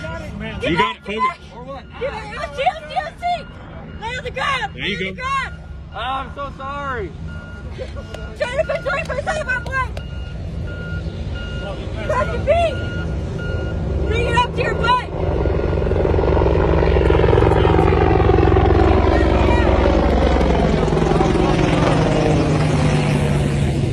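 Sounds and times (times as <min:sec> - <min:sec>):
vehicle reversing alarm beeping: 0:00.0 - 0:17.4
loud vehicle rumble passing: 0:00.0 - 0:23.9.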